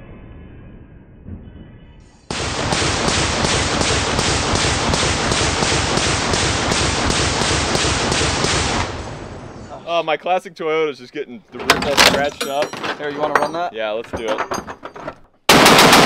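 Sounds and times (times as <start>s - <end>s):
machine gun firing burst: 2.3s - 9.0s, 15.5s - 16.0s.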